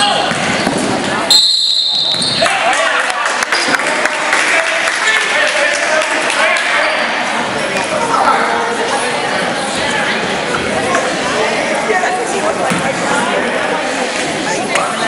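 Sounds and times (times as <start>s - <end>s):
players and spectators voices: 0.0s - 15.0s
referee's whistle: 1.3s - 2.5s.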